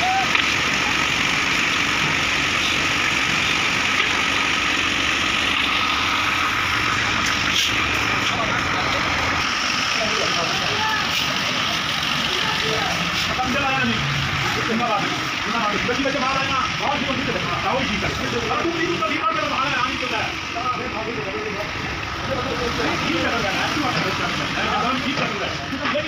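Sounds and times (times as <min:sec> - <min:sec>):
machine engine running: 0:00.0 - 0:26.0
faint workers' voices: 0:05.5 - 0:26.0.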